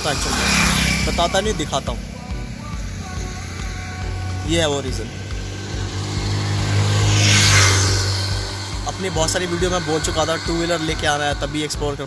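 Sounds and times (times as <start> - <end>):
vehicle passing by: 0.0 - 12.0.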